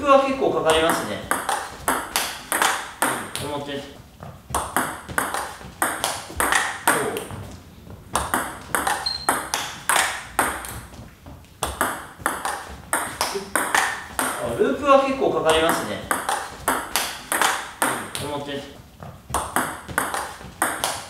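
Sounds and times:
ball bouncing on table: 0.7s - 3.5s, 4.2s - 11.0s, 11.6s - 14.6s, 15.5s - 18.3s, 19.0s - 21.0s
table tennis ball clicking off bats: 0.7s - 3.5s, 4.6s - 7.3s, 8.2s - 10.8s, 11.6s - 14.4s, 15.5s - 18.2s, 19.4s - 21.0s.

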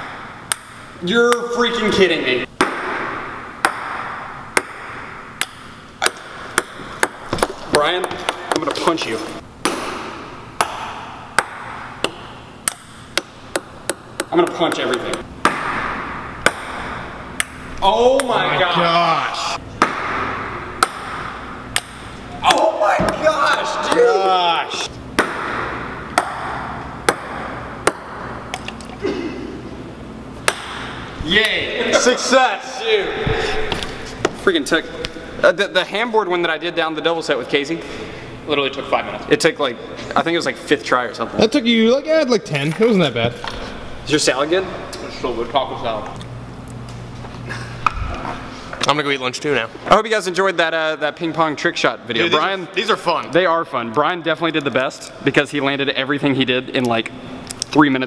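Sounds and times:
ping-pong ball bouncing on stairs: 0.5s - 1.4s, 3.6s - 8.7s, 10.6s - 17.5s, 19.8s - 22.1s, 25.2s - 28.2s.

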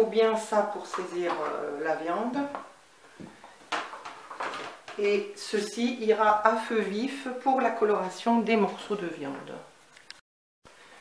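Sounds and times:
plastic tub knocks and rustles: 3.2s - 5.0s.

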